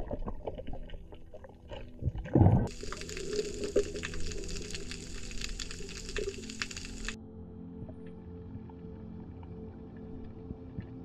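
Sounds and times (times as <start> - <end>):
underwater clicks crackling: 0.0 - 7.2
water noise: 0.0 - 7.2
steady low drone: 2.6 - 11.0.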